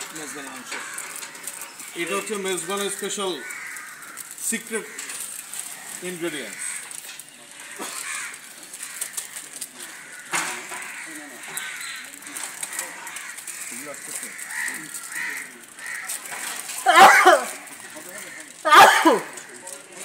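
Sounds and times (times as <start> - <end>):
birds calling: 0.0 - 20.0
people talking in background: 0.0 - 20.0.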